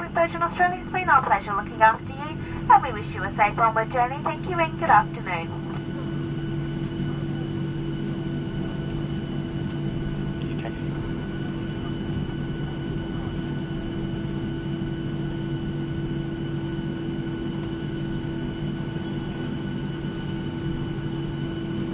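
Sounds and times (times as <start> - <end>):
jet engine hum in cabin: 0.0 - 21.9
steady whining tones: 0.0 - 21.9.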